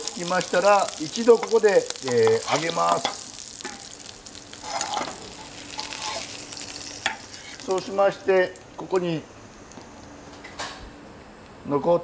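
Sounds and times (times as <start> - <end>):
meat sizzling in oil: 0.0 - 10.3.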